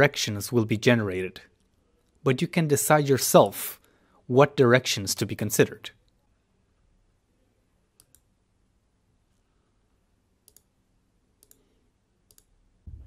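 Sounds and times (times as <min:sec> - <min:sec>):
computer mouse clicks: 0:08.0 - 0:08.3, 0:10.4 - 0:10.7, 0:11.4 - 0:11.7, 0:12.3 - 0:12.5.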